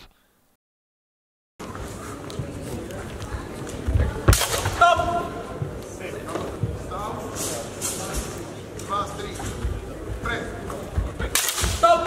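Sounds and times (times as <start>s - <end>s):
murmur of voices: 1.6s - 12.0s.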